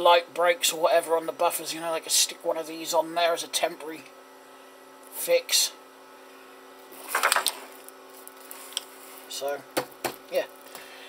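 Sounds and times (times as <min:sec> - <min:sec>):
steady low hum: 0:00.0 - 0:11.0
objects clattering on desk: 0:07.0 - 0:07.7.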